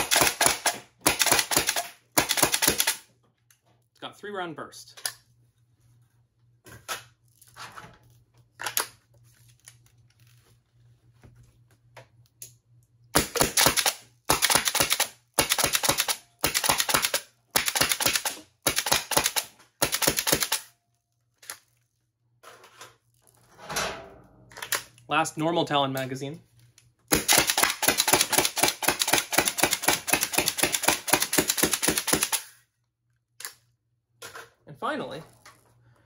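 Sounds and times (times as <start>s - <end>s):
air-powered toy blaster firing bursts: 0.0s - 3.0s, 13.2s - 20.7s, 27.1s - 32.5s
blaster handling clicks and knocks: 24.5s - 25.0s.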